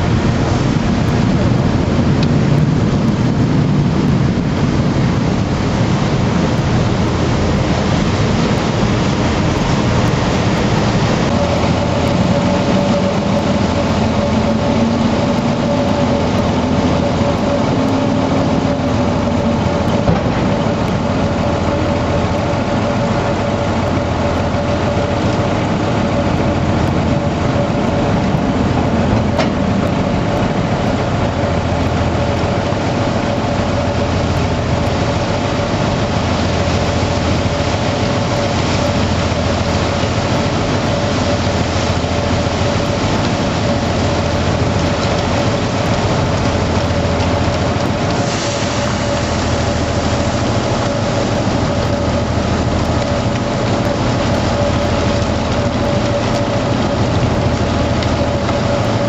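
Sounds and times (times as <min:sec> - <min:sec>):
loud mechanical drone: 0:00.0 - 0:59.0
low machine tone: 0:00.0 - 0:59.0
steady machine whine: 0:00.0 - 0:59.0.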